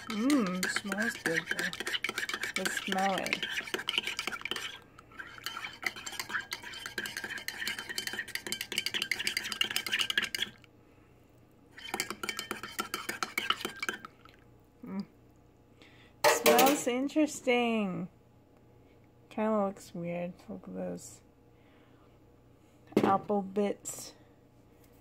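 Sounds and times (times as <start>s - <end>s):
spoon clinking in ceramic mug: 0.0s - 10.5s, 11.8s - 14.0s.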